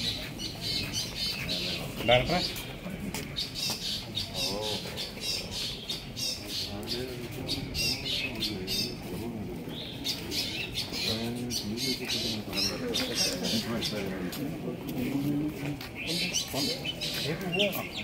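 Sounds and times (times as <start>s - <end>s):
birds chirping and squawking: 0.0s - 18.0s
men talking low: 0.0s - 18.0s.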